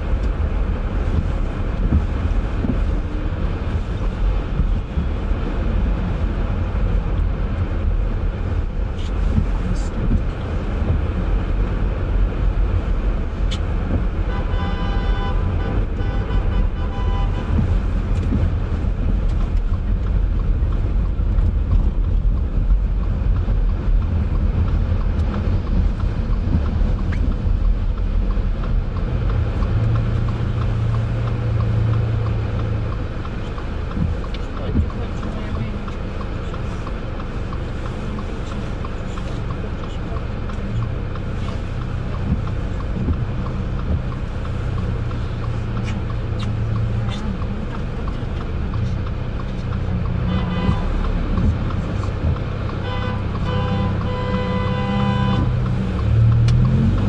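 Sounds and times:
car engine and tyre rumble: 0.0s - 57.0s.

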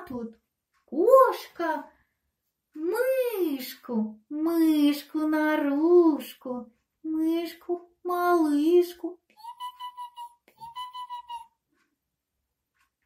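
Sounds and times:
person narrating: 0.0s - 2.0s, 2.7s - 11.6s
high-pitched fluttering squeaks: 9.4s - 11.5s.

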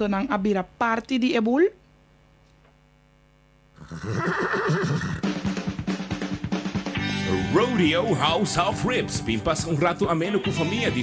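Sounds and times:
horse whinny: 3.8s - 5.3s
drum beat: 5.2s - 11.0s
upbeat music: 5.4s - 11.0s.

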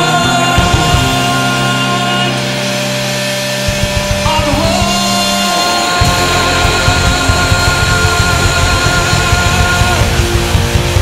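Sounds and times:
bass guitar: 0.0s - 11.0s
distorted electric guitar chord: 0.0s - 11.0s
drum beats: 0.0s - 11.0s.

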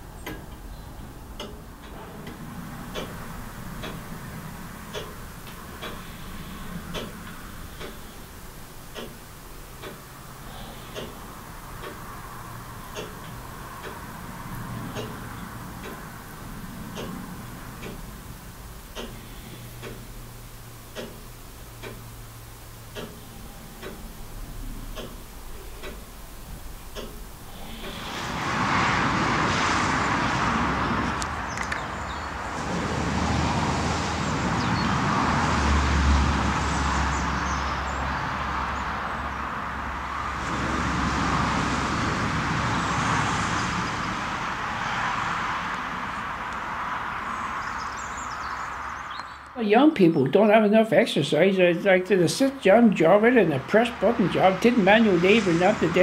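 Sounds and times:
clock ticking: 0.0s - 28.4s
outdoor rushing noise with low rumble: 0.0s - 49.4s, 52.6s - 56.0s.

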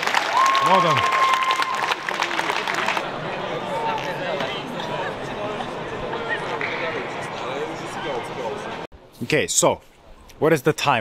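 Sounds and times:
crowd clapping: 0.0s - 3.0s.

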